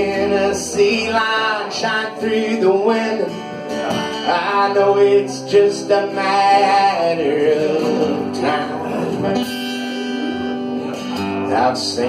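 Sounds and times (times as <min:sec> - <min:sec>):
guitar chord strummed: 0:00.0 - 0:12.0.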